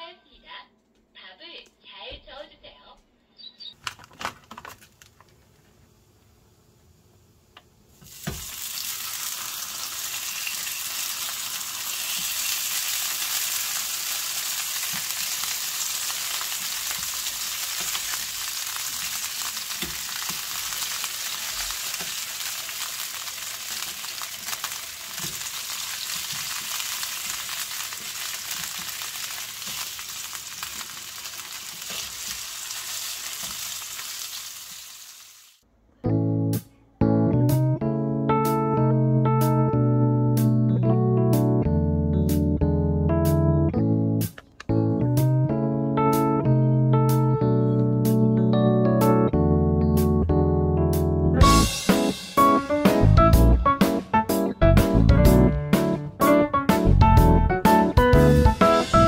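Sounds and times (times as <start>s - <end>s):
sausages sizzling in oil: 7.9s - 35.6s.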